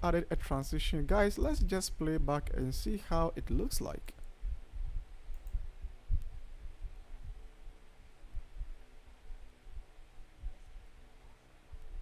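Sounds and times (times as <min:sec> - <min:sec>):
soft low thumps: 0:04.3 - 0:10.8.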